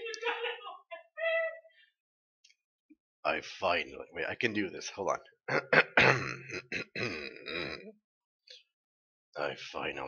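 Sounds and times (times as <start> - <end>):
man clearing his throat: 5.5 - 7.8.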